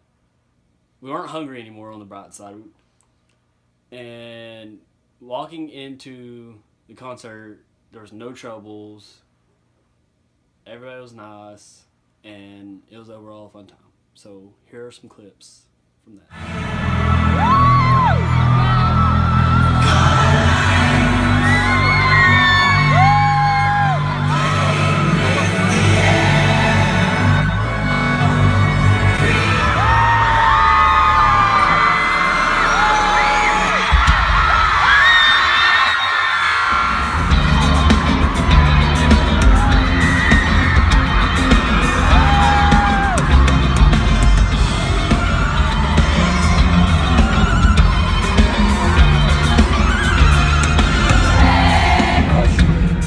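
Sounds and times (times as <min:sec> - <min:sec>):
loud live concert music: 0:16.3 - 0:35.6, 0:36.7 - 0:53.0
fans screaming and whooping: 0:16.5 - 0:53.0.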